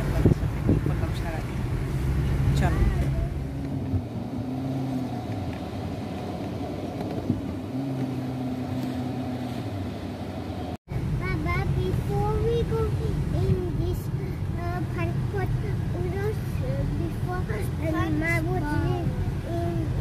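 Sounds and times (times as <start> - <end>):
car engine and road noise: 0.0 - 20.0
voices: 11.2 - 20.0.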